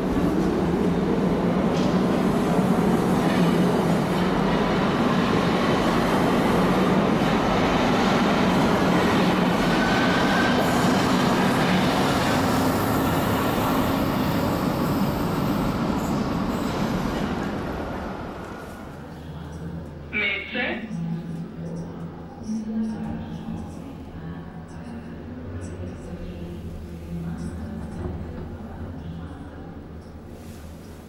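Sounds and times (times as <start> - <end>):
train rumbling past: 0.0 - 19.2.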